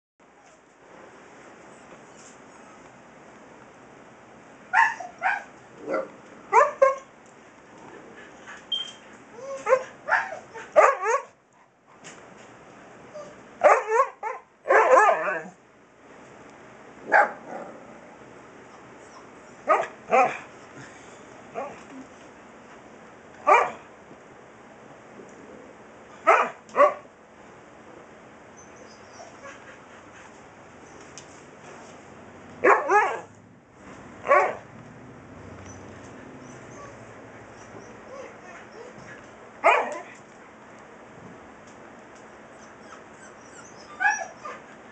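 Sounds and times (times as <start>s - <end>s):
puppy yipping and howling: 4.7s - 5.5s, 9.3s - 11.3s, 28.6s - 29.6s, 36.4s - 40.1s, 42.5s - 44.8s.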